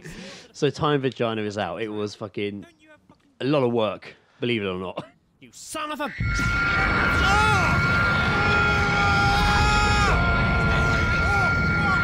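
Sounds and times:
constant high whine: 0:06.2 - 0:12.0.

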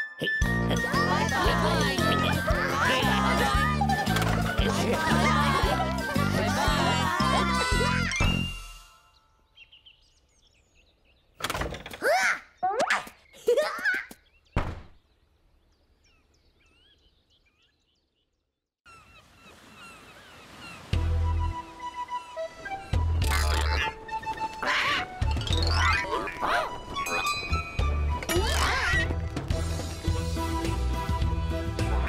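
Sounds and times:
bouncy music: 0:00.0 - 0:09.0, 0:22.5 - 0:32.0
faint birdsong: 0:08.9 - 0:27.6
wooden door thudding open: 0:11.4 - 0:12.0, 0:14.6 - 0:15.0
cartoon parrot squawking: 0:23.2 - 0:24.0, 0:24.6 - 0:27.3, 0:28.3 - 0:29.1.

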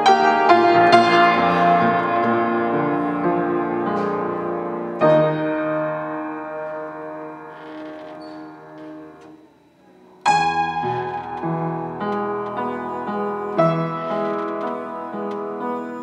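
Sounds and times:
piano playing slow hymn: 0:00.0 - 0:09.4, 0:10.2 - 0:16.0.

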